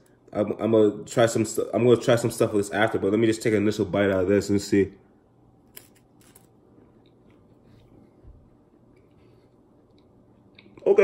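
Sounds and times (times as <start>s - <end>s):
quiet chewing with crackles: 8.9s - 10.8s.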